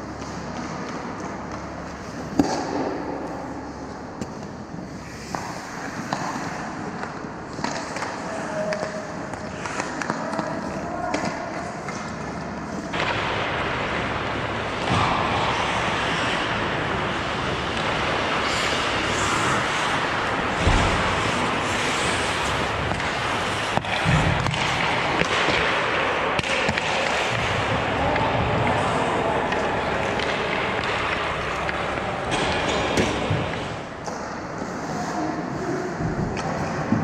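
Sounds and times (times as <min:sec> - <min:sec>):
hockey sticks and puck clacking: 0:00.0 - 0:35.3
skate blades scraping ice: 0:04.9 - 0:27.7.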